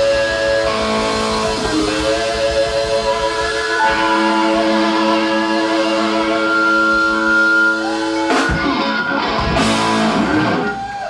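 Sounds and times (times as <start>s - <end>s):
electric guitars holding a chord: 0.0s - 11.0s.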